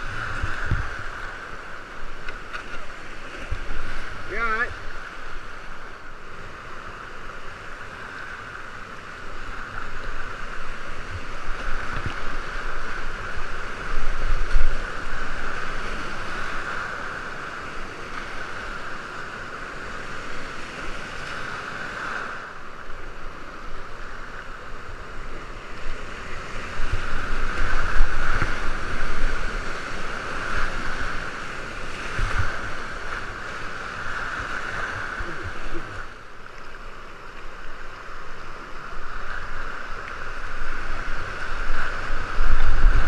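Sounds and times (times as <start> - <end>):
kayak splashing through waves: 0.0 - 43.0
whitewater rapids rushing: 0.0 - 43.0.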